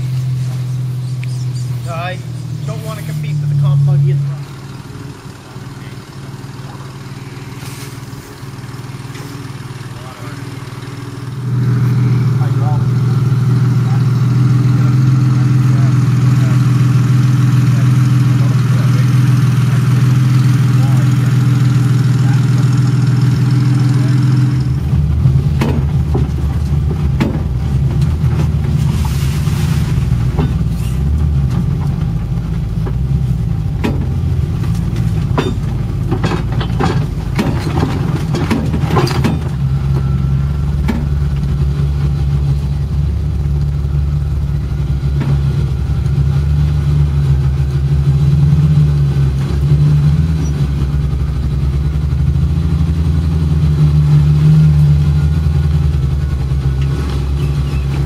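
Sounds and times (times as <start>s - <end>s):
truck engine running under load: 0.0s - 58.0s
knocks and clatter: 16.8s - 53.1s.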